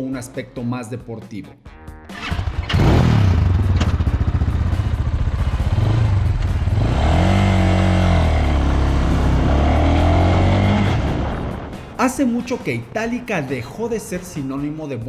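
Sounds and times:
motorcycle engine revving: 2.1 - 12.0.

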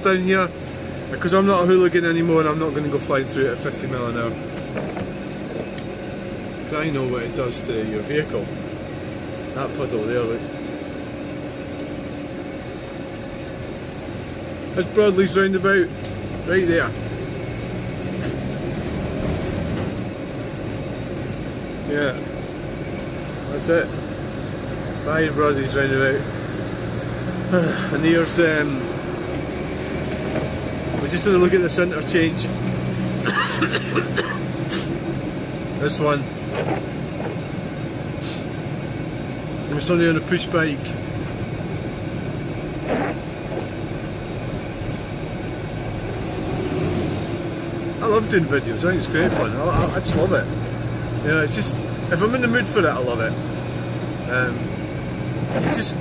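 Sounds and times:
car engine hum: 0.0 - 56.0
tyres on wet road: 24.3 - 37.5, 42.7 - 56.0
hiss: 38.2 - 38.5.

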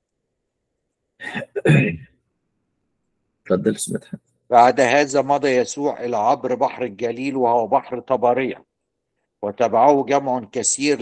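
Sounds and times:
man clearing his throat: 1.2 - 2.2.

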